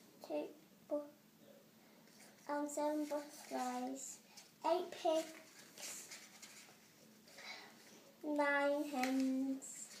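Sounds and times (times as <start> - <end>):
book page rustling: 2.1 - 10.0.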